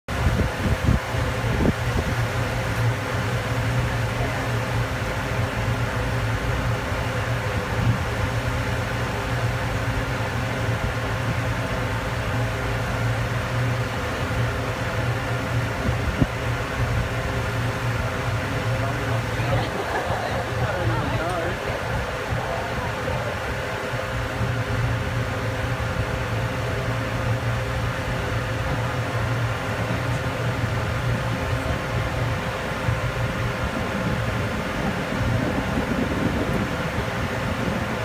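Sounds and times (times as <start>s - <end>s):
ferry engine droning: 0.0s - 38.0s.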